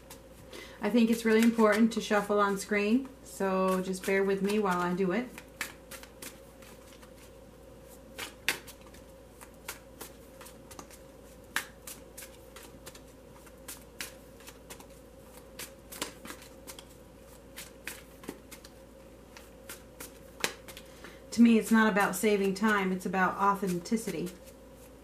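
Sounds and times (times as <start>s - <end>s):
cards being shuffled: 1.0s - 2.3s, 3.7s - 25.0s.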